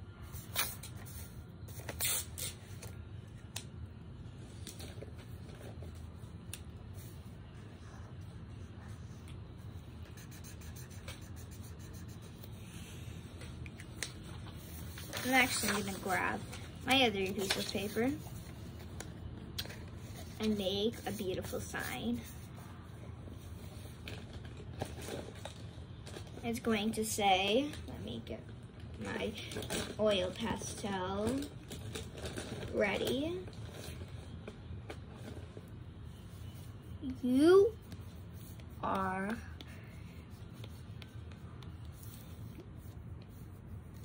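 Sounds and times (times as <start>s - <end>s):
room hum: 0.0s - 44.0s
paper rustling: 8.8s - 22.5s.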